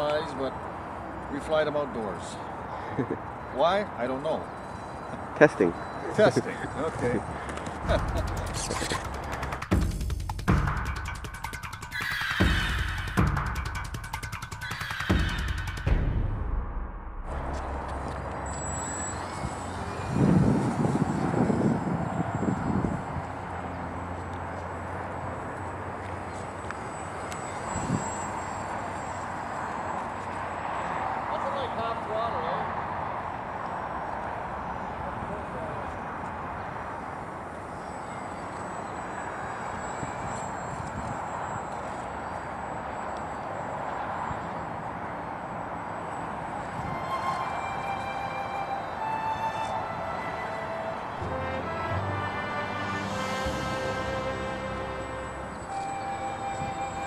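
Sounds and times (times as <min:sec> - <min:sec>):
outdoor noise: 0:00.0 - 0:57.0
low rumble: 0:15.9 - 0:18.0
electric motor and propeller whining: 0:17.4 - 0:25.0.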